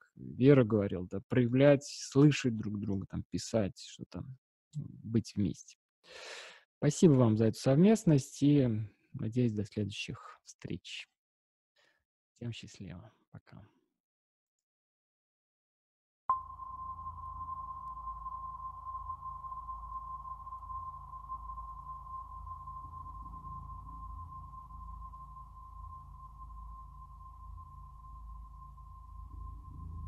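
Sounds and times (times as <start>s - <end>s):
faint low rumble: 16.3s - 30.0s
meditation bell ringing: 16.3s - 30.0s.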